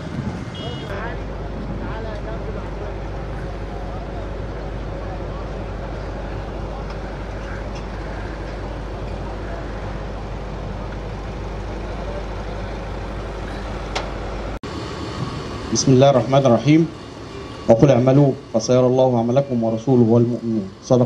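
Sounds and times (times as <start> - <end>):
low rumble: 0.0 - 19.6
faint indistinct voices: 0.9 - 14.0.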